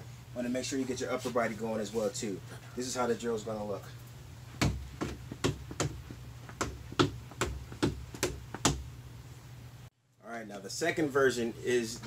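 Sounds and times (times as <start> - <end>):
steady low hum: 0.0 - 12.0
toe taps on stair step: 4.6 - 8.9.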